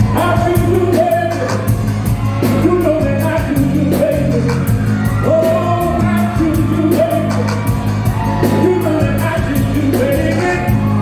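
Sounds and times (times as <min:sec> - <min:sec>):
man singing: 0:00.0 - 0:01.8, 0:02.4 - 0:07.7, 0:08.4 - 0:11.0
band with bass and beat: 0:00.0 - 0:11.0.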